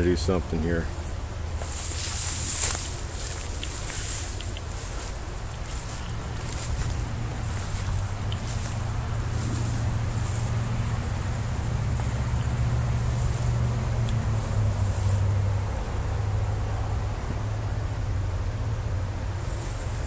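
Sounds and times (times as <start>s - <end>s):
distant road traffic rumble: 0.0s - 20.0s
light rustling: 1.0s - 10.8s.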